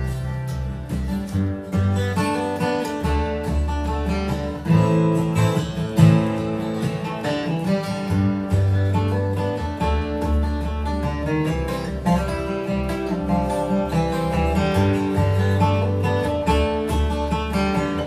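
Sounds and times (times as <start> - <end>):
acoustic guitars strumming and picking: 0.0 - 18.0
upright bass notes: 0.0 - 18.0.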